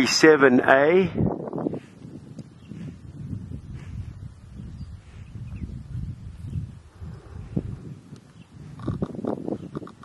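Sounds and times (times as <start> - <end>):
cattle lowing: 6.6 - 10.0.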